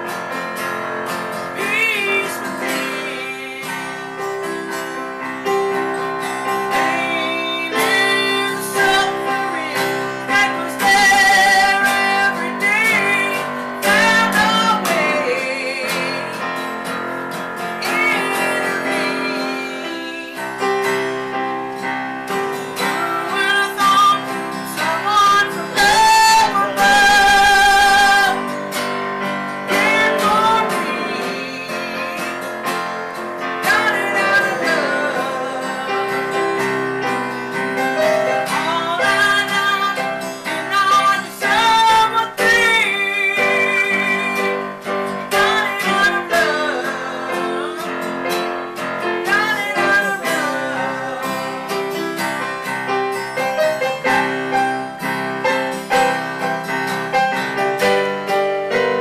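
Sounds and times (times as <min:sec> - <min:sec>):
guitar accompaniment: 0:00.0 - 0:59.0
person singing with vibrato: 0:01.1 - 0:58.0.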